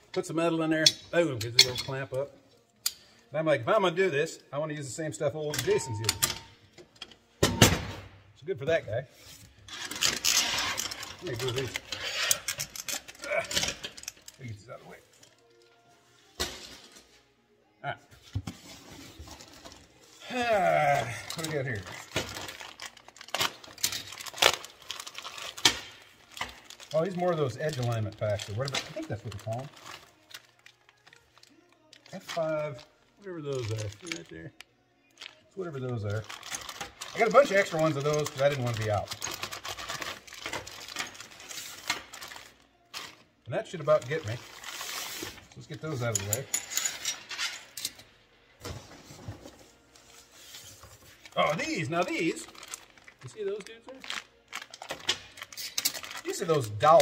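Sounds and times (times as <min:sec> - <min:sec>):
plastic bags crinkling: 0:09.7 - 0:15.9, 0:19.4 - 0:46.4, 0:50.9 - 0:57.0.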